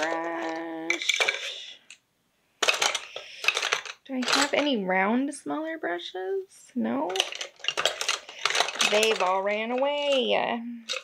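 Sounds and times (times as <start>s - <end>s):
paintbrushes clinking in container: 0.0s - 1.9s, 2.6s - 4.8s, 7.0s - 11.0s.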